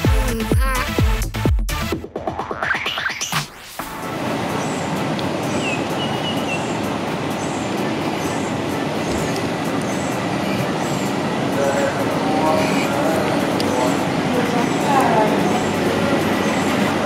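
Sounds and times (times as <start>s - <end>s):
rushing outdoor background noise: 0.0s - 17.0s.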